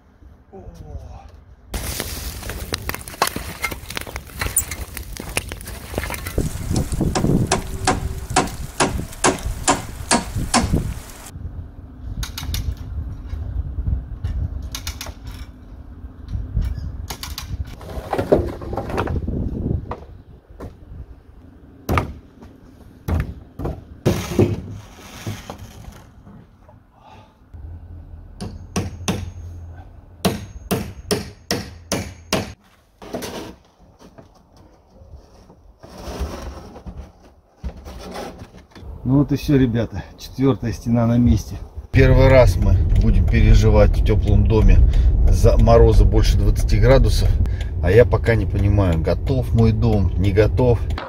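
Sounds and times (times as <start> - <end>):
bonfire crackling and popping: 1.8 - 11.3, 41.9 - 51.0
sharp impacts: 1.8 - 11.3, 42.0 - 51.0
timber knocking and clattering: 2.6 - 11.3.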